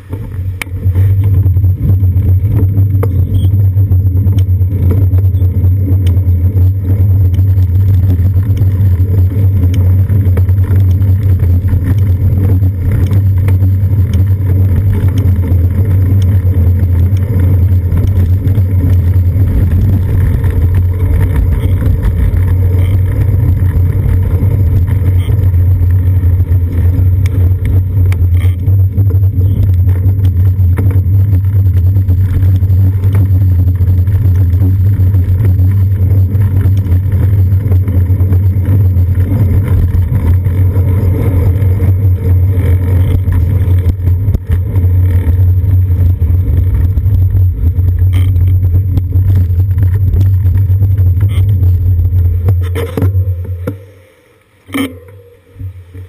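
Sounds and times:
bus and van engines: 0.0 - 53.8
road vibration: 0.0 - 56.0
wind buffeting: 0.2 - 52.7.

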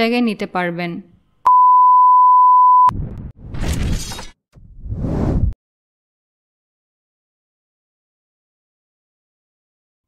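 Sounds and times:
steady electronic beep: 1.5 - 3.0.

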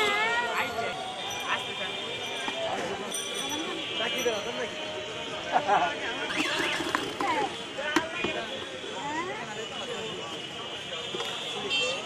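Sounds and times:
people talking: 0.0 - 12.0
street noise: 0.0 - 12.0.

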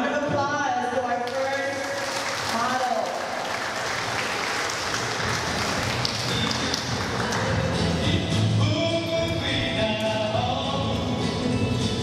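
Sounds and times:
audience applauding: 1.3 - 8.0
music with low bass and melody: 5.2 - 12.0.

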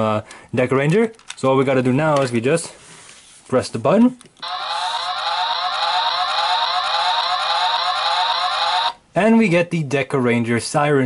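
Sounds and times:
toy police siren wailing: 4.4 - 9.0.

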